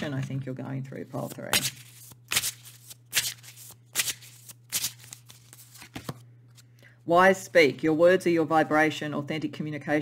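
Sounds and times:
cards being shuffled: 1.2 - 6.7.

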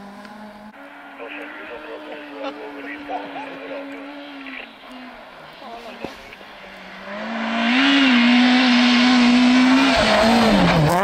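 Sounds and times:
distant car engine approaching: 0.0 - 11.0
faint spectator voices: 1.1 - 6.6.

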